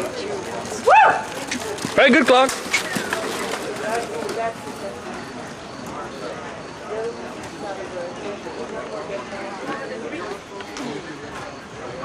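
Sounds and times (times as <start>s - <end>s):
voices talking: 0.0s - 12.0s
horse hoofbeats trotting on dirt: 0.4s - 4.9s.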